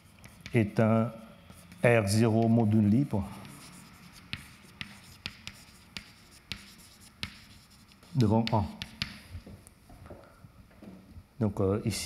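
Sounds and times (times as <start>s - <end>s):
chalk tapping on blackboard: 0.0s - 0.8s, 1.4s - 9.4s
chalk scratching: 0.0s - 9.2s.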